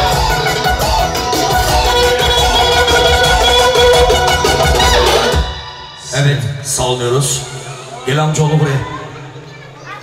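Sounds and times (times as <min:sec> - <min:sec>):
clarinet melody: 0:00.0 - 0:05.6
electronic keyboard with beat: 0:00.0 - 0:05.8.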